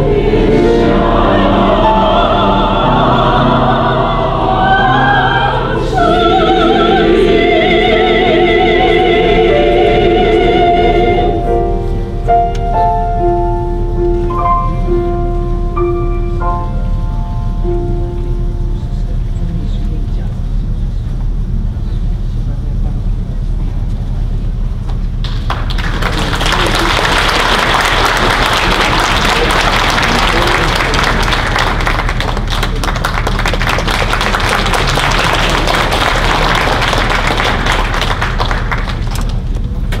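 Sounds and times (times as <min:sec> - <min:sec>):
low room hum: 0:00.0 - 0:40.0
audience applause: 0:25.2 - 0:39.6.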